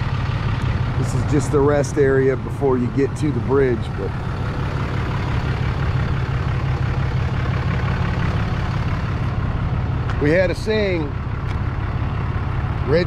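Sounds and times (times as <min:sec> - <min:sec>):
road and engine noise in car: 0:00.0 - 0:13.0.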